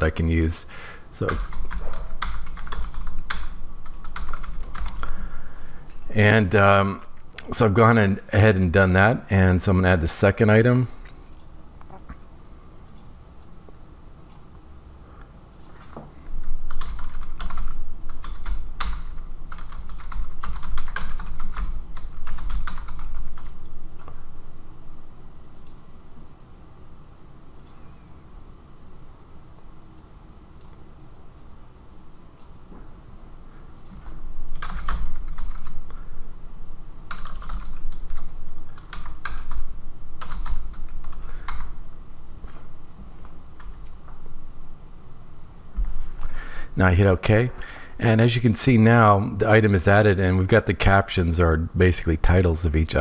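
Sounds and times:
keyboard typing: 0:01.2 - 0:05.2, 0:15.5 - 0:23.7, 0:33.8 - 0:35.8, 0:37.1 - 0:41.8.

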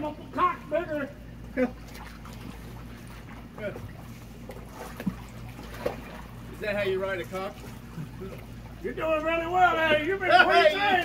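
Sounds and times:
pool water lapping: 0:00.0 - 0:11.0
steady low hum: 0:00.0 - 0:11.0.

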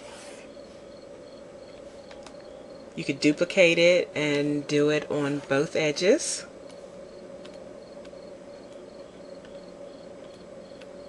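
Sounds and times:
cricket chirping: 0:00.5 - 0:02.8, 0:06.6 - 0:10.8.

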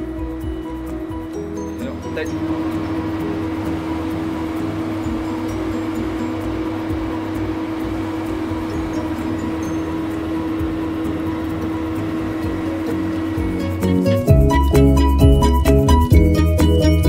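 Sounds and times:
machine humming: 0:00.0 - 0:17.0.

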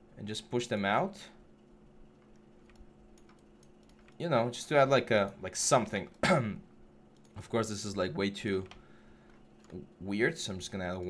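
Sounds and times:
faint steady hum: 0:00.0 - 0:11.0
computer mouse and keyboard clicks: 0:02.2 - 0:04.2.

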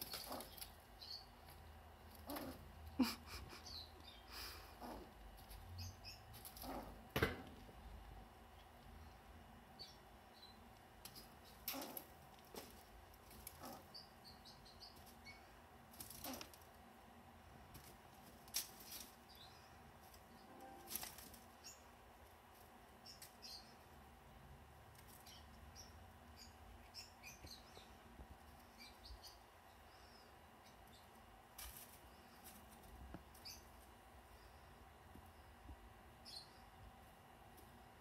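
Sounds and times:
squirrel scratching and rummaging: 0:00.0 - 0:03.1, 0:04.8 - 0:07.2, 0:10.8 - 0:25.8, 0:30.8 - 0:34.0.

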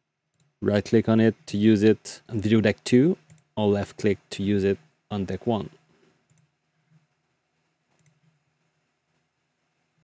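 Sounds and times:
faint low room hum: 0:00.0 - 0:10.0
computer mouse click: 0:03.2 - 0:03.5, 0:06.3 - 0:06.5, 0:07.9 - 0:08.2.

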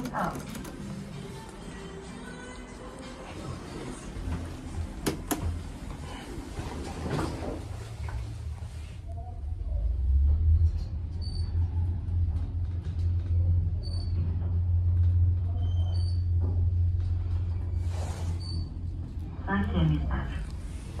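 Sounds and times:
elevator low rumble: 0:00.0 - 0:21.0.

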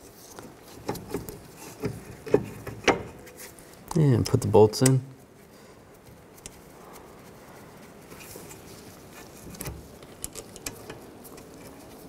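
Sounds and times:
light metallic clicks and knocks: 0:00.8 - 0:03.3, 0:09.4 - 0:11.8.

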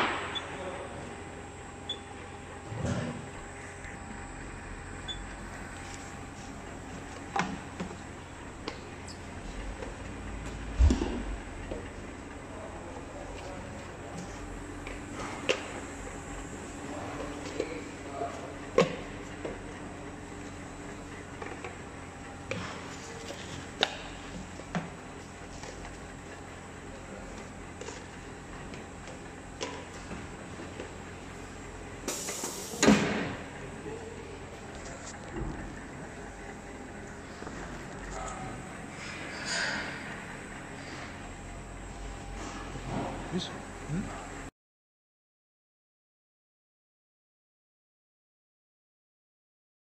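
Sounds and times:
conveyor machine hum: 0:00.0 - 0:44.5
air hiss: 0:32.1 - 0:33.1.

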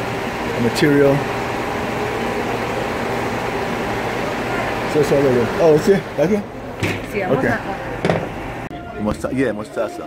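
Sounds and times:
steady background hum: 0:00.0 - 0:10.0.

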